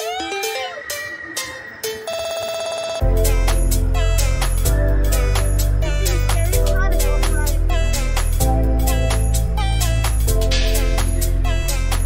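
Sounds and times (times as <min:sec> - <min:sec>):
electronic music: 0:00.0 - 0:12.0
trilling electronic ringing tone: 0:00.2 - 0:03.0.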